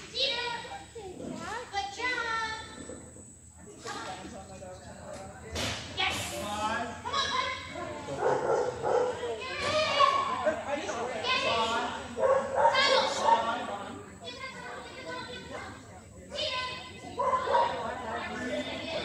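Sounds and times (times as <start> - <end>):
people's voices: 0.0 - 19.0
dog barking: 8.1 - 9.3, 12.2 - 13.6, 17.1 - 17.9.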